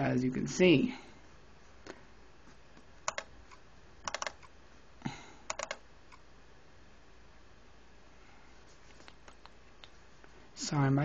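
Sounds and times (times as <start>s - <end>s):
quick sharp computer clicks: 3.1s - 4.6s, 5.5s - 6.2s.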